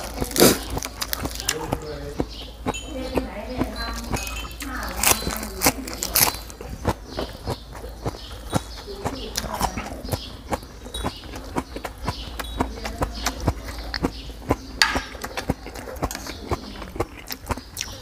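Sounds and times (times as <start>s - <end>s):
chewing crisp salad: 0.0s - 18.0s.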